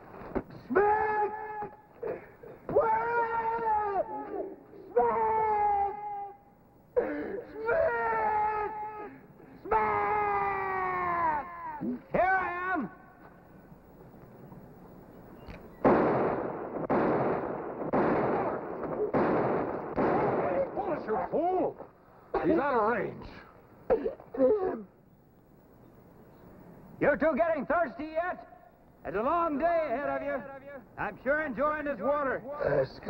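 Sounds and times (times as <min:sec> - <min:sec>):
man shouting: 0:00.6 - 0:01.8, 0:02.7 - 0:06.4, 0:07.5 - 0:13.1.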